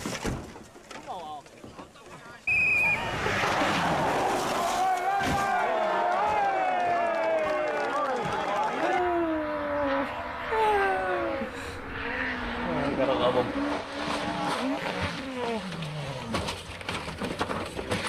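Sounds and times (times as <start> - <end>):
rally car engine at high revs: 8.8 - 18.0.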